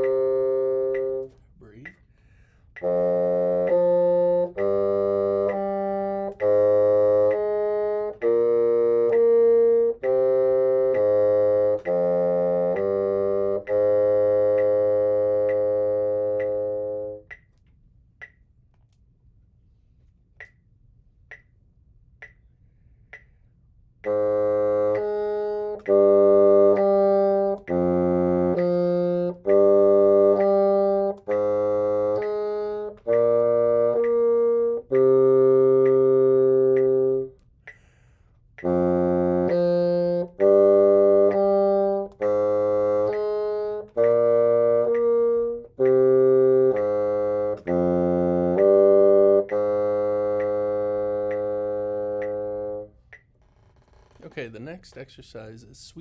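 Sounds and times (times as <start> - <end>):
solo bassoon playing: 0.0 - 1.8, 2.7 - 17.4, 24.0 - 38.0, 38.6 - 54.3.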